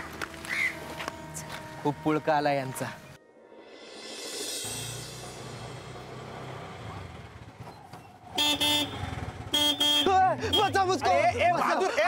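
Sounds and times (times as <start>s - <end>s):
auto-rickshaw engine humming: 4.6s - 11.3s
horn honks: 8.3s - 10.8s.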